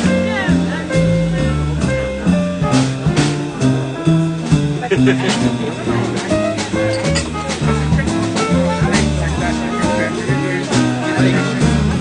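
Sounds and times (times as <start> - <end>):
grand piano: 0.0 - 12.0
jazz group playing: 0.0 - 12.0
low bass line: 0.0 - 12.0.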